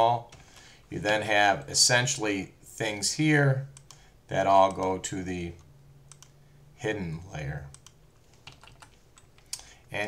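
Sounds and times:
keyboard and mouse clicks: 3.7 - 4.0, 5.6 - 6.4, 7.7 - 9.7.

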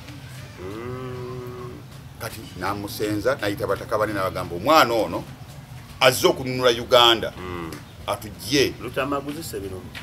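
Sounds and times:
cow mooing: 0.6 - 1.8.

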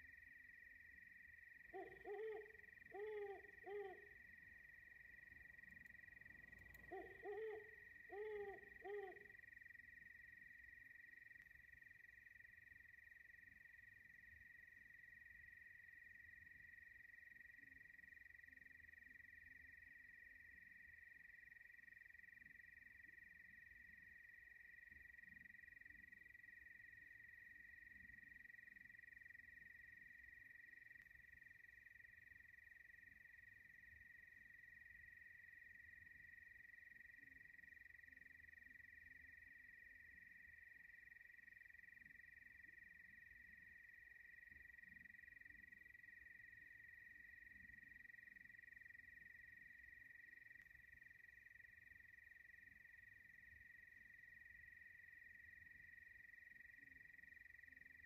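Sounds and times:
faint high-pitched whine: 0.0 - 58.0.

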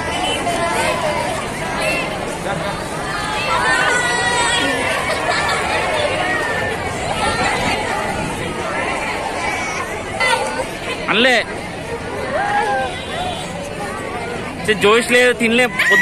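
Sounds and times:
young women chattering: 0.0 - 14.7.

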